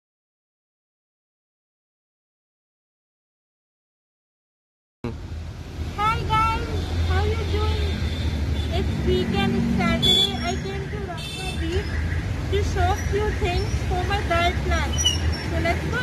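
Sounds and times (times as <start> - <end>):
low street traffic rumble: 5.0 - 16.0
voices talking: 6.0 - 8.1, 8.7 - 16.0.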